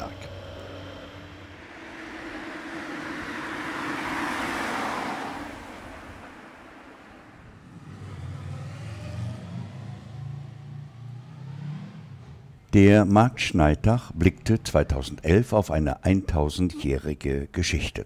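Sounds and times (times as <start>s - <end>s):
car driving past: 0.0s - 15.2s
uneven vehicle engine: 0.0s - 17.4s.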